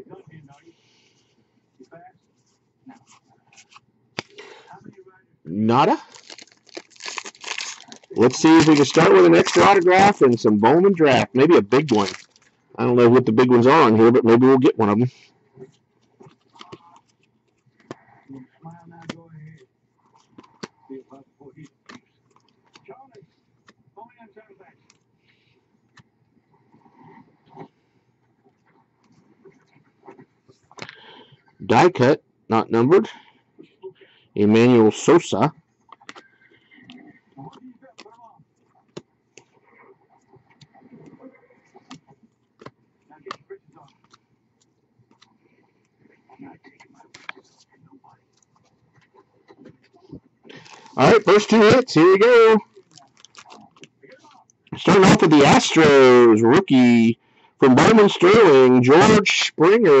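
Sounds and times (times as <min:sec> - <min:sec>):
trading cards being flipped through: 0:03.0 - 0:04.4, 0:06.0 - 0:10.4, 0:11.2 - 0:12.6, 0:41.8 - 0:45.4, 0:48.4 - 0:51.8
cards flipping with snapping clicks: 0:21.8 - 0:22.8.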